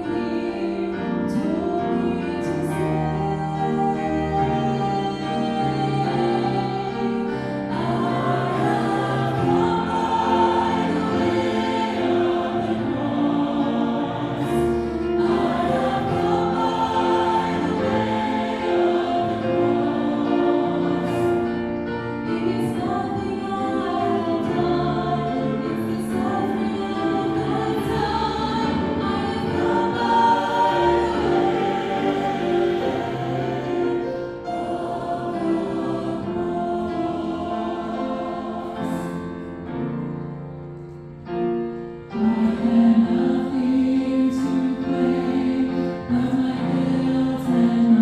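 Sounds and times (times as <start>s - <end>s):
choir singing gospel song: 0.0s - 40.9s, 41.8s - 48.0s.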